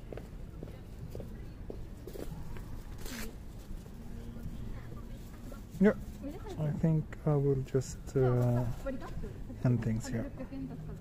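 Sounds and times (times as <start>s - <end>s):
low city street hum: 0.0s - 11.0s.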